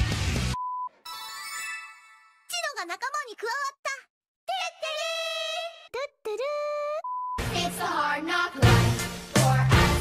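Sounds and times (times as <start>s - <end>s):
cartoon girls' voices speaking: 2.5s - 7.1s.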